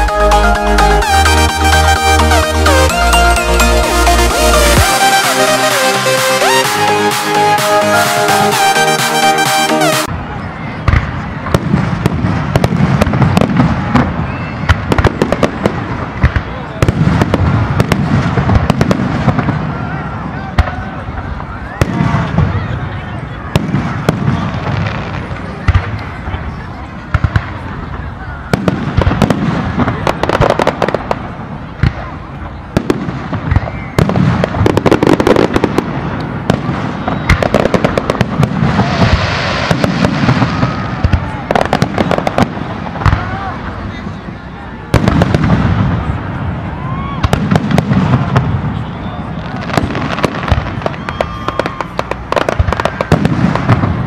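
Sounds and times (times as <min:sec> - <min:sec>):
crowd voices: 0:00.0 - 0:54.0
fireworks bangs and crackles: 0:01.0 - 0:54.0.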